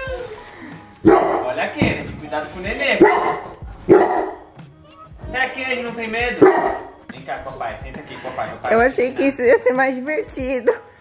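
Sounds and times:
dog barking deeply: 1.0s - 1.6s, 2.9s - 4.5s, 6.4s - 6.9s.

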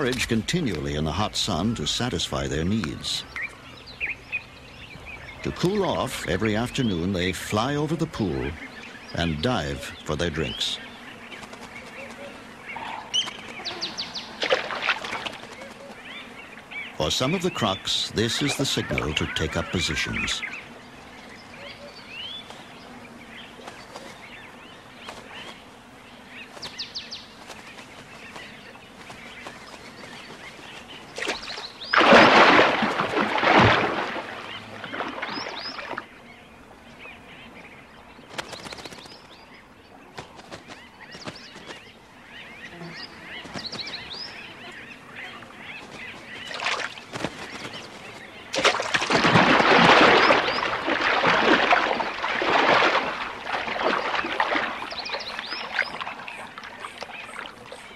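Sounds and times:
bee-eaters calling: 0.0s - 57.9s
loud rushing water splashes: 31.9s - 36.0s, 48.6s - 56.1s.

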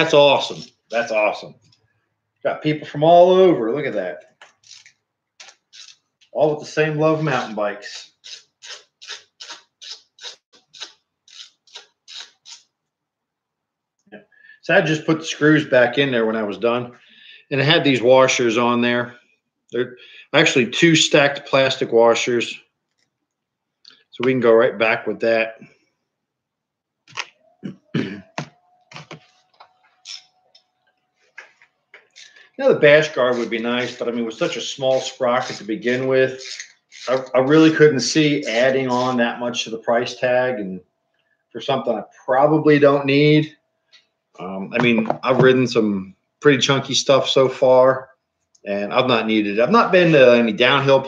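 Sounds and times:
hand tool clicking: 33.1s - 37.3s
bicycle parts clicking: 36.4s - 37.3s.

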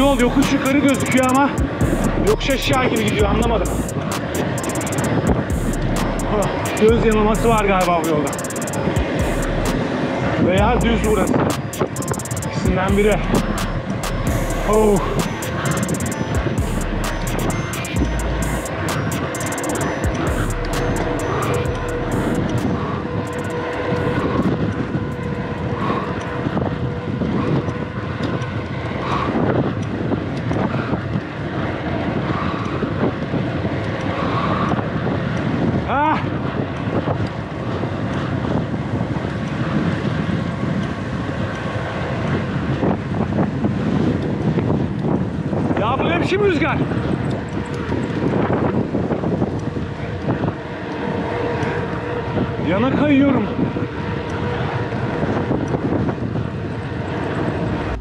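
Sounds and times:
wind on microphone: 0.0s - 58.0s
bicycle tyre noise on asphalt: 22.1s - 58.0s.

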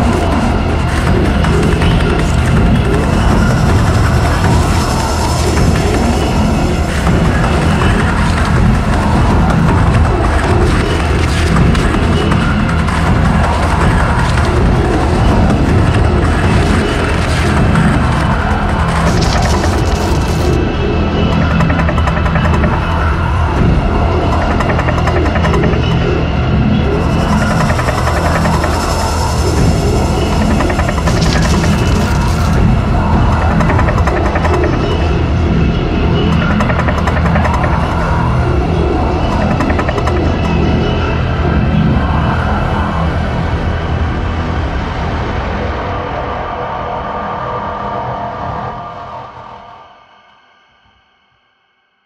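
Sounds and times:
electronic music with heavy bass: 0.0s - 43.5s.

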